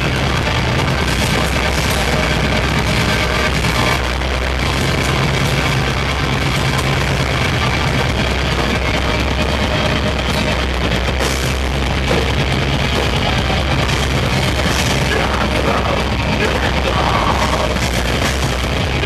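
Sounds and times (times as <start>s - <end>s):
distorted electric guitars: 0.0s - 19.0s
low bass notes: 0.0s - 19.0s
metal band playing live: 0.0s - 19.0s.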